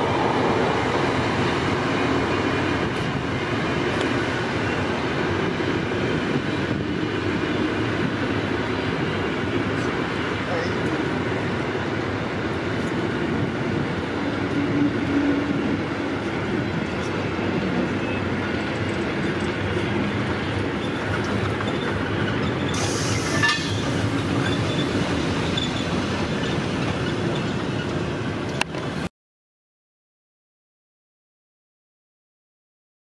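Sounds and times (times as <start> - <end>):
train wheels rumbling on track: 0.0 - 29.1.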